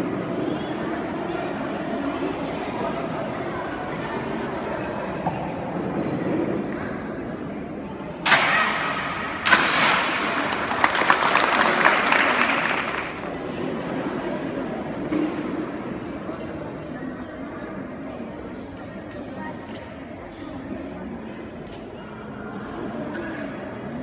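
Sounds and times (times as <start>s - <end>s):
audience applause: 9.8s - 13.3s.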